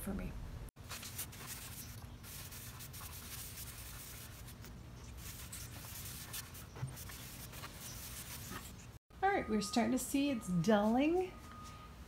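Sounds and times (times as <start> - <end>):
brush scrubbing wooden tabletop: 0.8 - 9.0.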